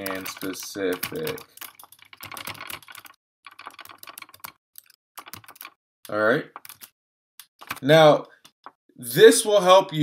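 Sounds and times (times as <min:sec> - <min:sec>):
typing on computer keyboard: 0:00.0 - 0:05.8, 0:06.5 - 0:07.8.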